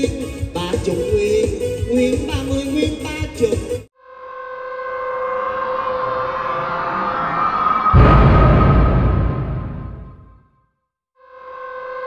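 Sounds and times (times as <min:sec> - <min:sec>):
deep boom: 0:08.0 - 0:10.4.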